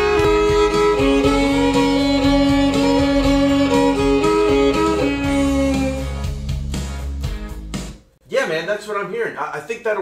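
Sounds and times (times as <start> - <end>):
country music with guitar: 0.0 - 6.2
man talking: 8.2 - 10.0.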